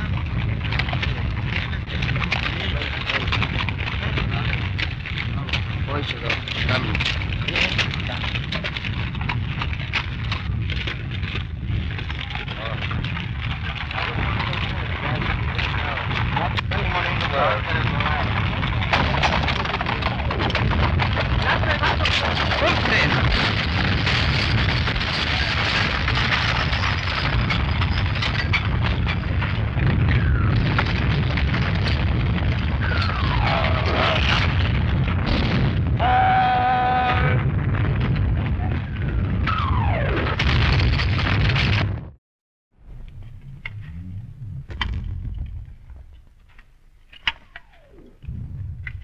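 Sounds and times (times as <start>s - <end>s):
distant shelling rumble and crackle: 0.0s - 42.2s, 42.8s - 49.0s
indistinct voices: 32.7s - 34.6s, 36.0s - 37.5s.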